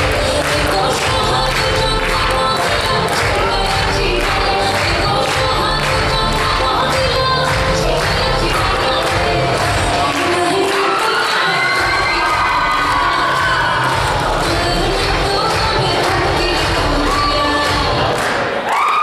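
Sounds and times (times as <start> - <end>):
dance song with singing: 0.0 - 18.7
audience cheering and shouting: 9.6 - 19.0.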